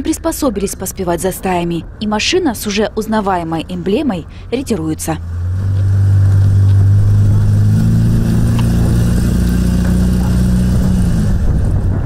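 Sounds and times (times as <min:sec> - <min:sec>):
pickup truck engine pulling away: 0:05.2 - 0:12.0.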